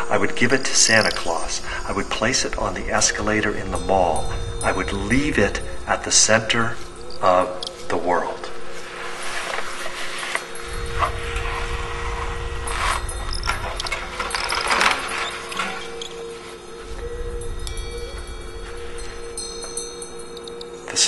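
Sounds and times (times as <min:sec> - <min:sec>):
low rumble: 0:00.0 - 0:20.9
low drone: 0:00.0 - 0:21.0.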